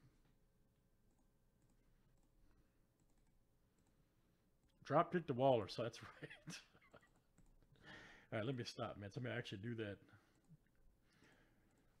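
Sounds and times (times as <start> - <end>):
low steady room hum: 0.0 - 12.0
computer mouse clicks: 1.0 - 4.0, 7.1 - 7.6.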